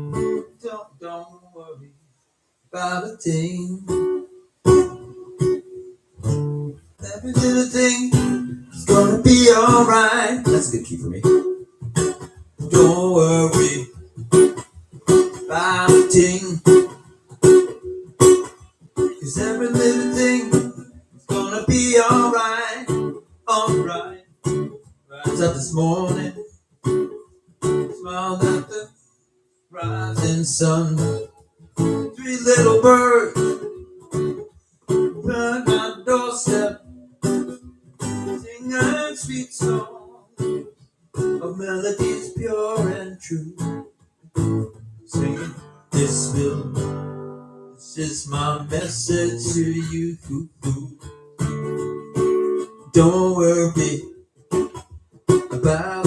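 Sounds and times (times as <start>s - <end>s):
acoustic guitar strummed chords: 0.0s - 2.0s, 2.7s - 56.0s.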